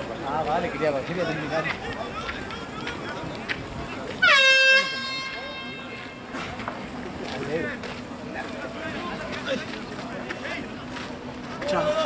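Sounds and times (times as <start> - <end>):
air horn blast: 4.2 - 6.3.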